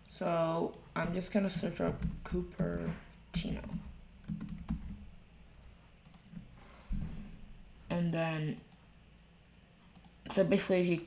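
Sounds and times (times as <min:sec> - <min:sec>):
computer mouse click: 0:06.0 - 0:06.4.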